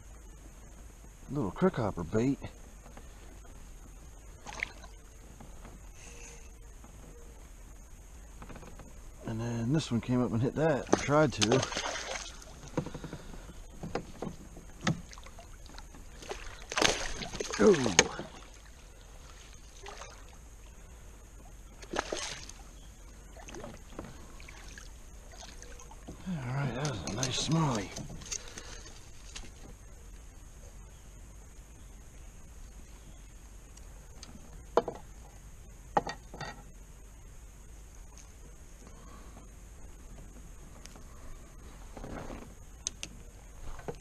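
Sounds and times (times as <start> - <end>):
water lapping around boat: 2.6 - 7.6, 10.0 - 30.8
fish splashing at water surface: 11.4 - 12.6, 16.2 - 18.6, 21.8 - 22.6.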